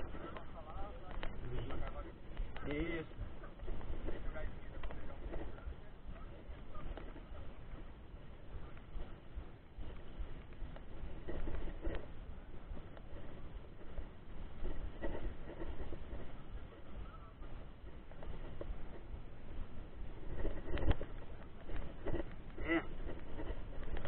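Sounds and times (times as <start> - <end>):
faint voices: 0.0 - 24.0
tyres on gravel: 0.0 - 24.0
wind on microphone: 0.0 - 24.0.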